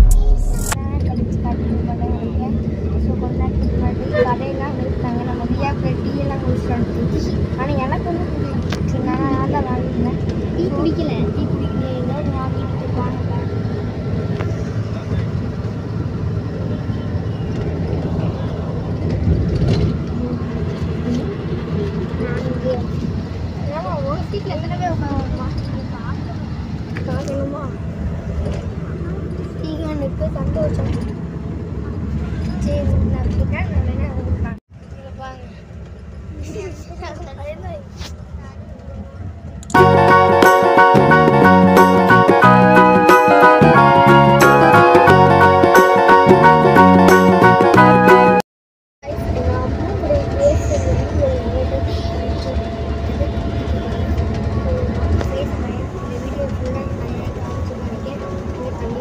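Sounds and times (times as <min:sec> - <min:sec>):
people talking: 0:00.0 - 0:15.5, 0:19.8 - 0:27.8, 0:28.4 - 0:31.2, 0:32.4 - 0:35.6, 0:36.3 - 0:38.6, 0:49.0 - 0:59.0
bus engine and road rumble: 0:00.0 - 0:42.9, 0:49.0 - 0:59.0.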